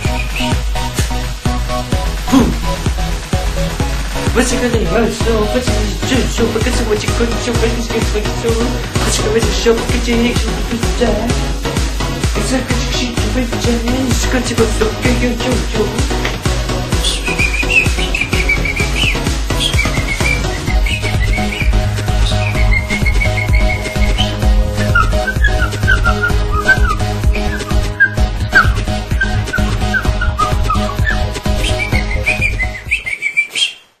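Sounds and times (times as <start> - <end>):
pop music beat and bass: 0.0 - 33.0
high whistling lead melody: 0.0 - 33.8.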